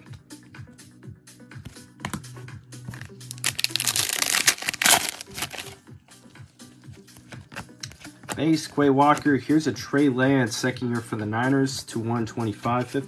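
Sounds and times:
background music: 0.0s - 13.0s
foil wrapper crinkling and tearing: 3.0s - 5.8s.

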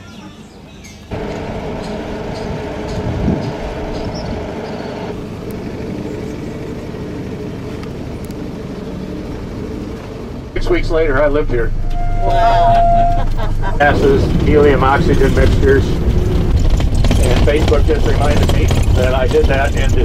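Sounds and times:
vehicle engine and road hum: 0.0s - 20.0s
low bump: 11.4s - 20.0s.

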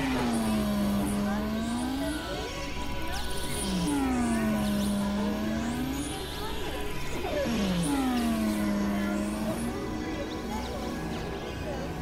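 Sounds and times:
synthesizer drone sliding tone: 0.0s - 2.4s, 3.5s - 6.3s, 7.4s - 10.1s
noisy buzzing bed: 0.0s - 12.0s.

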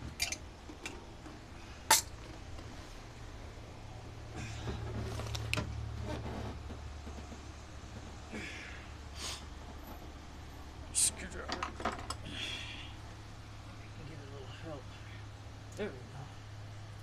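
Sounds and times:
steady low hum: 0.0s - 17.0s
rubbing and scraping of hose: 4.4s - 8.4s.

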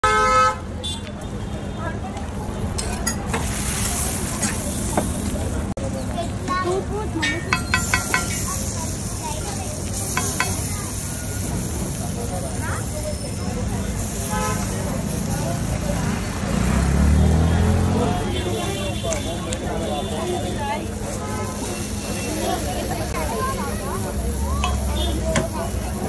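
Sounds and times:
vehicle horn toots: 0.0s - 1.6s, 14.2s - 14.8s
traffic: 0.0s - 26.0s
people's voices: 0.6s - 26.0s
flatbread sizzling on griddle: 2.5s - 26.0s.

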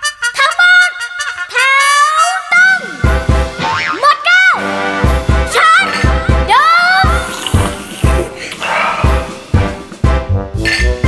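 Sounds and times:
pop song with bouncy beat and brass: 0.1s - 8.4s, 9.0s - 11.0s.

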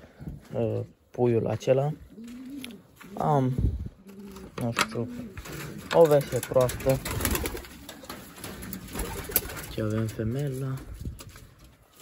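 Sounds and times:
handling scuffing and rustling: 0.1s - 7.0s, 7.8s - 12.0s
pigeons cooing: 1.6s - 10.3s.

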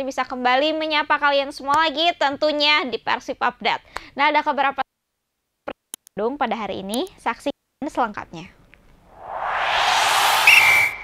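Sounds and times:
whoosh sound effect: 9.1s - 11.0s
high whistle-like ping: 9.2s - 11.0s.

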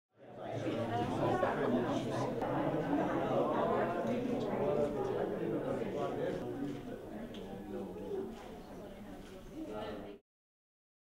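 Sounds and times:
babble of overlapping conversation: 0.2s - 10.2s.

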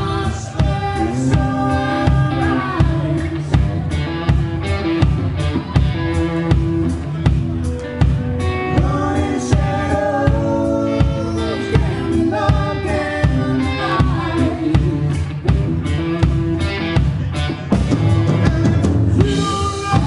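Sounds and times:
voices singing: 0.0s - 4.2s, 8.4s - 16.8s, 17.8s - 20.0s
drum kit: 0.0s - 20.0s
electric guitar: 0.0s - 20.0s.

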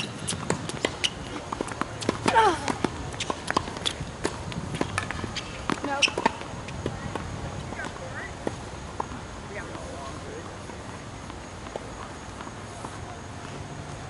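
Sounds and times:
racket strikes and ball bounces: 0.0s - 7.3s
footsteps on court: 0.0s - 14.0s.

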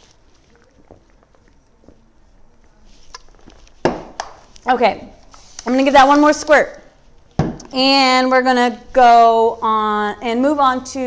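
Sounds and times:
paintbrush dabbing and brushing: 0.0s - 3.8s.

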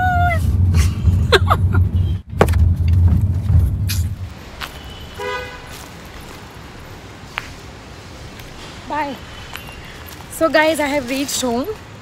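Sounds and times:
car cabin driving rumble: 0.0s - 4.6s
car horn toot: 4.6s - 5.8s.

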